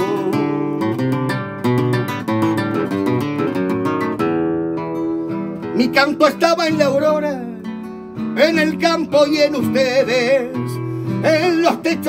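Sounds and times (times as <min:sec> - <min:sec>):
classical acoustic guitar playing: 0:00.0 - 0:12.0.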